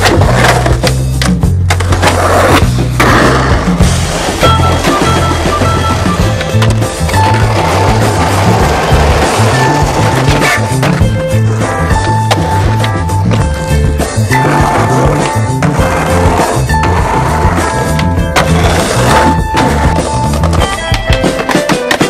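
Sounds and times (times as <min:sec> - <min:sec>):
music with heavy bass line: 0:00.0 - 0:21.4
skateboard clacks: 0:00.0 - 0:22.0
skateboard wheels rolling on pavement: 0:00.0 - 0:22.0.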